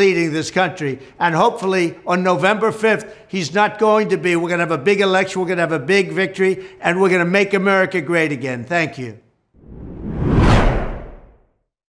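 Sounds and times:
deep whoosh: 0:09.6 - 0:11.4.

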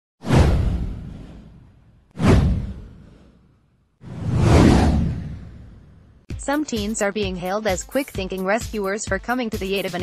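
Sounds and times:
whoosh with deep low boom: 0:00.2 - 0:06.3.

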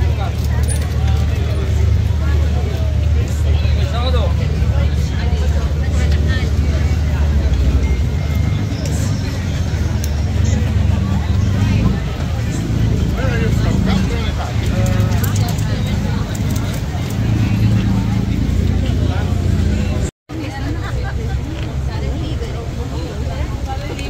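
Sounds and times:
crowd chatter: 0:00.0 - 0:24.0
low engine drone: 0:00.0 - 0:24.0.

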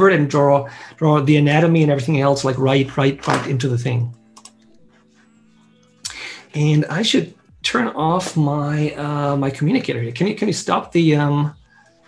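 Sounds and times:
computer keyboard clicks: 0:04.4 - 0:04.7.

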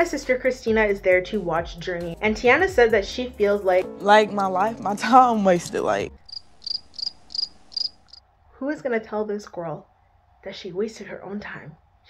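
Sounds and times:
cricket chirps: 0:06.2 - 0:08.2.

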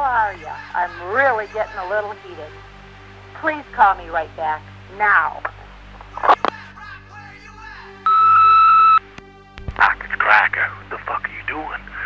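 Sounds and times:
answering machine beep: 0:08.1 - 0:09.0.

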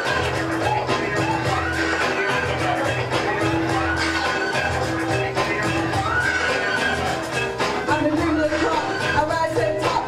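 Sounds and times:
hip-hop beat over speakers: 0:00.0 - 0:10.0.

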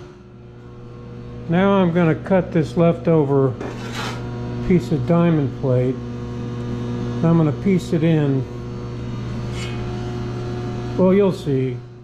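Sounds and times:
shop equipment humming: 0:00.0 - 0:12.0.

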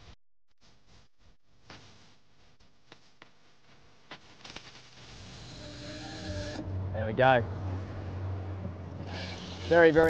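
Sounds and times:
fishing reel line whirring: 0:09.0 - 0:10.0.

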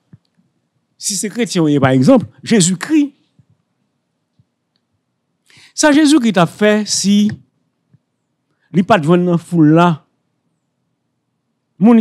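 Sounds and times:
faint clicks: 0:00.1 - 0:00.5, 0:04.3 - 0:05.6
man speaking: 0:01.0 - 0:03.2, 0:05.7 - 0:07.4, 0:08.8 - 0:10.0, 0:11.8 - 0:12.0.

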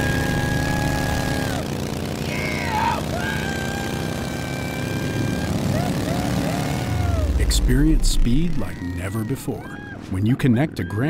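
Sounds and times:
motorcycle engines rumbling: 0:00.0 - 0:11.0.

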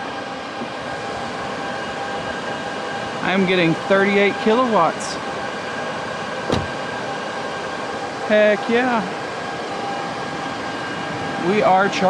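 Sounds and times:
fan whir with high whine: 0:00.0 - 0:12.0
short knock: 0:06.5 - 0:06.8.

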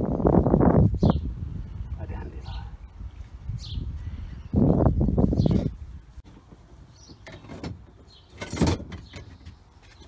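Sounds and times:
garden fork scraping tools: 0:05.4 - 0:10.0.

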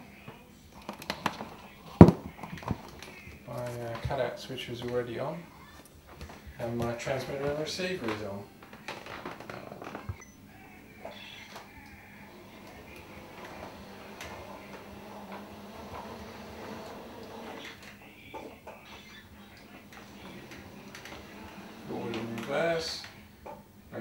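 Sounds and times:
drive motors humming: 0:04.9 - 0:24.0.

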